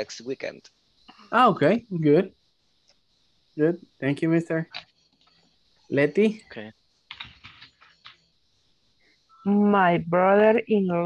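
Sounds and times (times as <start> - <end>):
faint keyboard typing: 6.2 - 8.3.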